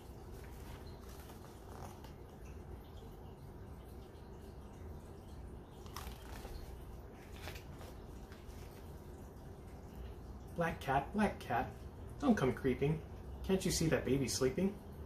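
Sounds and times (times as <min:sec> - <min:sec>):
low room hum: 0:00.0 - 0:15.0
paper pages rustling: 0:00.3 - 0:02.2, 0:05.8 - 0:08.8.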